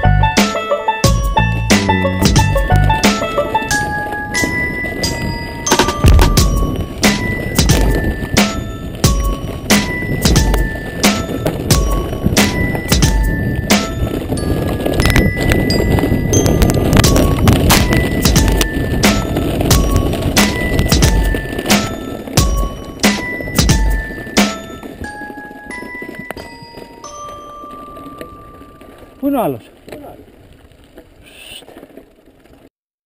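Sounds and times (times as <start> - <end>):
bike tyres clattering on stone: 0.4 - 32.7.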